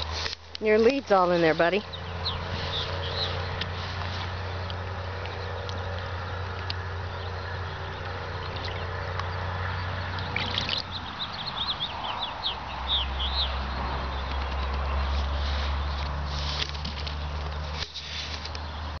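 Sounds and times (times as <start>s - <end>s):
small bird chirping: 1.8s - 16.1s.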